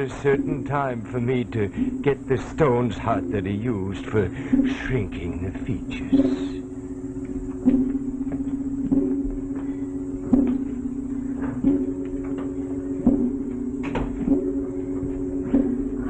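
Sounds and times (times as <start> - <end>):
clock ticking: 0.0 - 6.7
low droning chord: 0.0 - 16.0.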